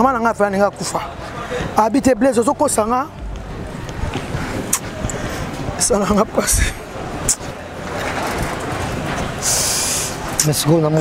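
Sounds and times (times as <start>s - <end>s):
street traffic noise: 0.0s - 11.0s.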